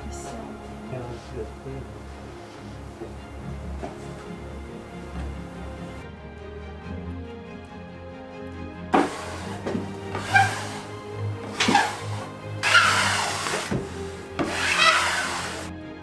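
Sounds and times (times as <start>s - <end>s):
background music: 0.0s - 16.0s
plastic spreader scraping cloth: 9.0s - 15.7s.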